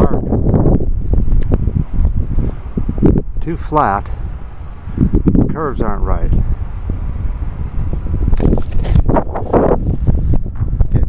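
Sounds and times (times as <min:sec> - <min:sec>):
wind buffeting microphone: 0:00.0 - 0:11.0
short rustling bursts: 0:08.2 - 0:10.4.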